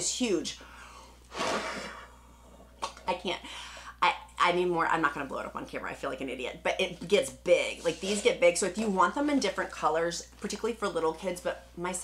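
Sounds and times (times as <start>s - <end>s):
breath blown into balloon: 1.3s - 2.2s.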